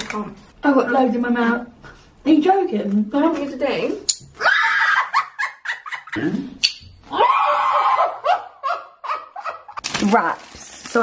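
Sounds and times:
woman shrieking with laughter: 0:04.4 - 0:05.5, 0:07.1 - 0:09.6.

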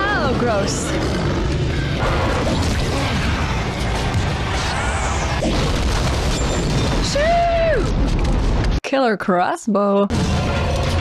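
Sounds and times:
action soundtrack music: 0:00.0 - 0:07.3, 0:10.1 - 0:11.0
booming blast effects: 0:00.4 - 0:07.6.

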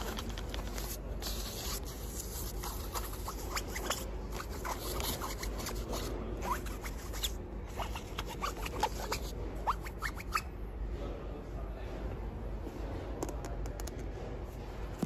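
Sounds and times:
fingernails scratching fabric bags: 0:00.0 - 0:10.4
steady low hum: 0:00.0 - 0:15.0.

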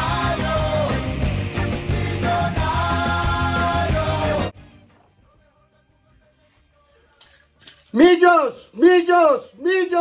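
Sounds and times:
man speaking: 0:07.8 - 0:10.0.

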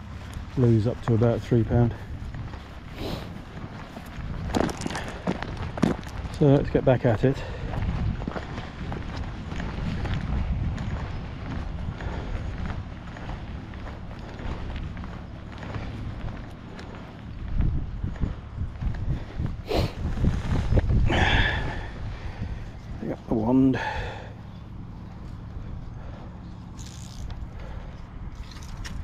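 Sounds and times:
footsteps on gravel and grass: 0:00.0 - 0:29.0
wind rumble on microphone: 0:00.0 - 0:29.0.

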